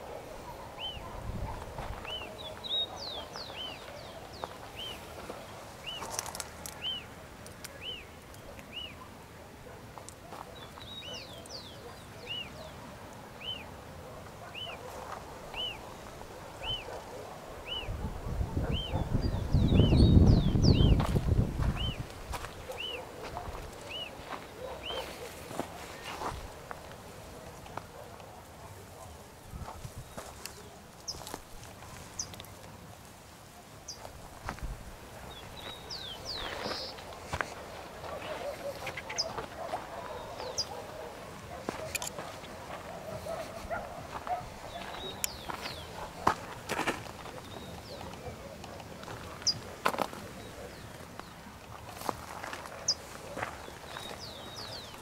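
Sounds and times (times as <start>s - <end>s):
footsteps through dry brush: 1.2s - 8.7s, 20.1s - 28.0s, 29.4s - 33.2s, 33.9s - 55.0s
bird calling: 38.0s - 46.5s
sharp clicks and crunches: 41.7s - 42.6s.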